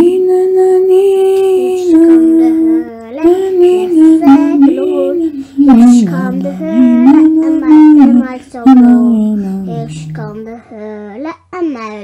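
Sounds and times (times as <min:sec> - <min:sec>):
person singing a lullaby: 0:00.0 - 0:10.5.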